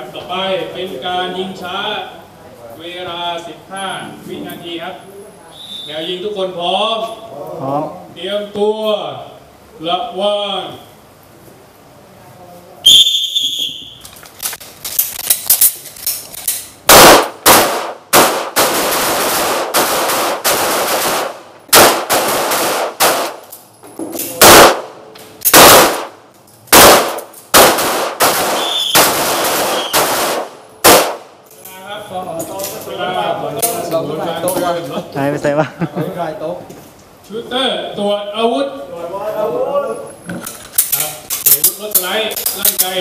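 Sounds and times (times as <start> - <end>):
high beep: 12.9 - 14.0
pistol gunshots echoing: 16.9 - 23.4, 24.4 - 31.3.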